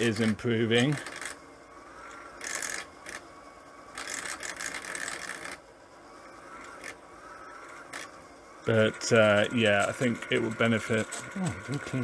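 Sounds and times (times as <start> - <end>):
faint motor whine: 0.0 - 12.0
scratchy slipping friction noise: 4.0 - 5.6.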